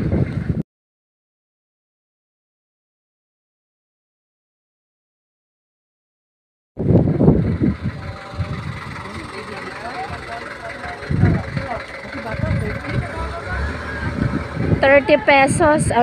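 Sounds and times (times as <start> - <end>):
low uneven rumble: 6.8 - 16.0
vehicle nearby: 6.8 - 16.0
indistinct voices: 7.0 - 16.0.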